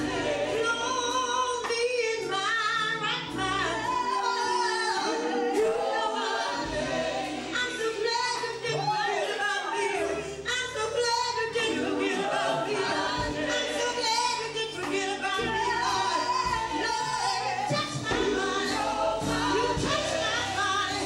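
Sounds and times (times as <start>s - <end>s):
women singing gospel: 0.0s - 21.0s.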